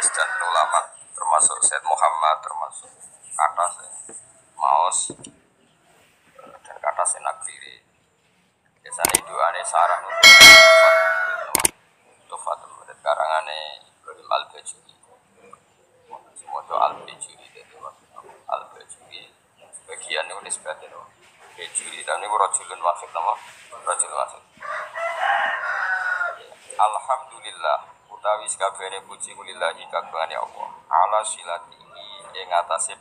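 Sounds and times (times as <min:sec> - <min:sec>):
rooster crowing: 0:00.0 - 0:00.9, 0:09.8 - 0:11.7, 0:24.6 - 0:26.5
person speaking: 0:08.9 - 0:09.4
mouse clicks: 0:09.0 - 0:09.2
bright bell ding: 0:10.2 - 0:11.7.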